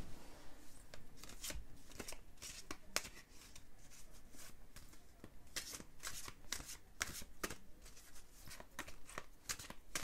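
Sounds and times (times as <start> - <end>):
cards being shuffled by hand: 0.9 - 10.0.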